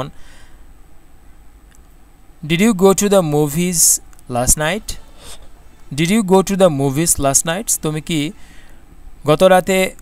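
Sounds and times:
faint background noise: 0.0s - 10.0s
man speaking: 2.4s - 8.5s, 9.2s - 10.0s.

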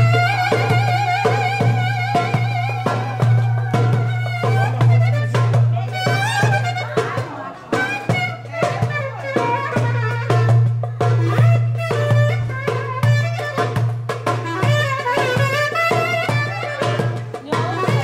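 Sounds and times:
clarinet playing folk melody: 0.0s - 18.0s
large drum beating: 0.0s - 18.0s.

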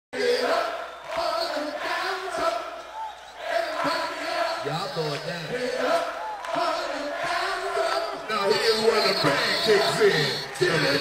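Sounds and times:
voices chanting and shouting: 0.1s - 11.0s
concert crowd: 0.2s - 11.0s.

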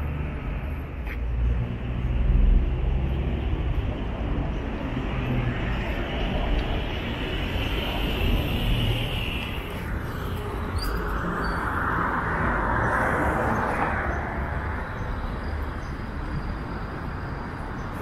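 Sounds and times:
vehicles driving past: 0.0s - 18.0s.

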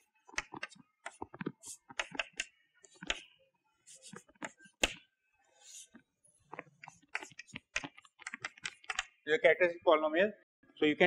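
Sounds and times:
chalk tapping and scraping on blackboard: 0.3s - 3.3s, 3.9s - 5.0s, 5.6s - 9.2s.

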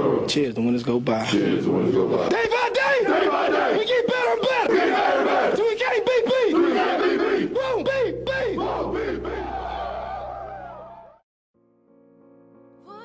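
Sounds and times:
players shouting a chant: 1.4s - 11.0s.

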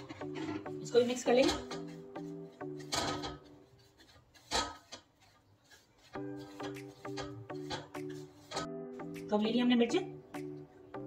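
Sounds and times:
hands scraping dry spice mix: 1.6s - 8.8s.

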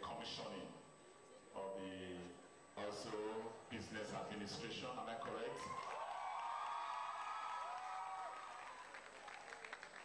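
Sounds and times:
audience clapping: 5.2s - 10.0s.

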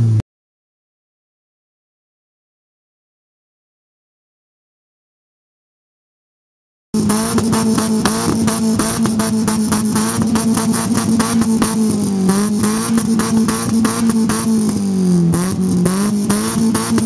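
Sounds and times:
car engine at high revs: 7.0s - 17.0s.

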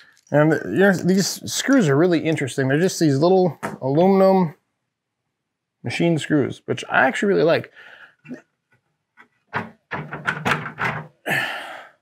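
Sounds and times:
glass panel knocks and thunks: 9.5s - 11.2s.

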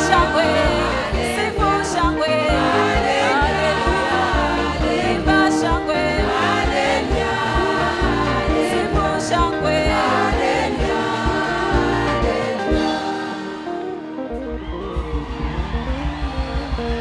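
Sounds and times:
steady bass beat: 0.0s - 12.4s, 14.6s - 17.0s
gospel choir singing: 0.0s - 14.2s
band accompaniment: 0.0s - 17.0s.

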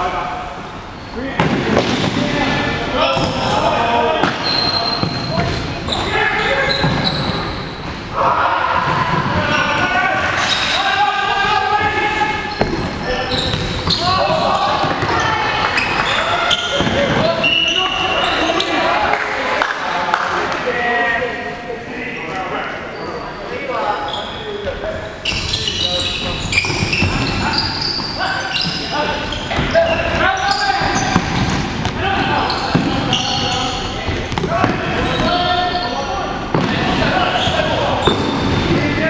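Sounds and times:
players shouting: 1.2s - 21.4s, 25.4s - 39.0s.

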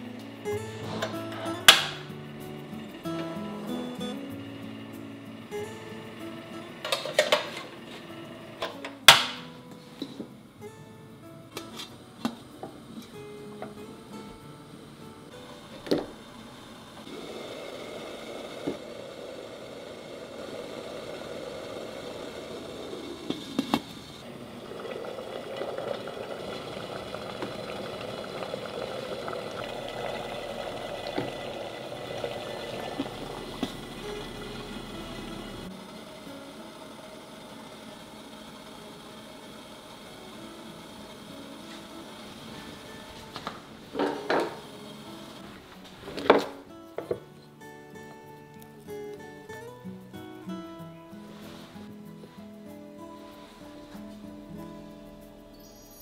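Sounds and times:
water boiling in a pot: 0.0s - 9.3s, 15.3s - 46.6s.

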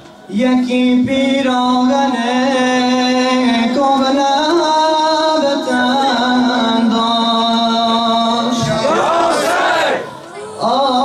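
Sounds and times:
men calling out together: 8.6s - 10.2s.

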